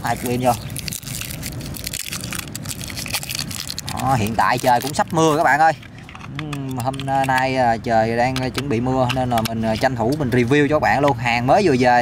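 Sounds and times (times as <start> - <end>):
plastic wrapping crackling: 0.0 - 7.4.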